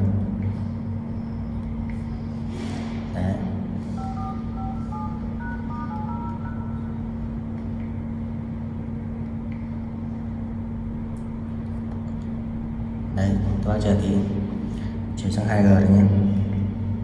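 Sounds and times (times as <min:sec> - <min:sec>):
low hum and rumble: 0:00.0 - 0:17.0
phone keypad beeps: 0:03.9 - 0:07.0.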